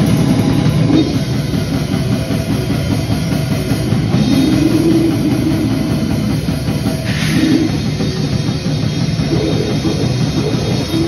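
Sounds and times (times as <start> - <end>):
distorted electric guitar: 0.0 - 11.0
drum kit: 0.0 - 11.0.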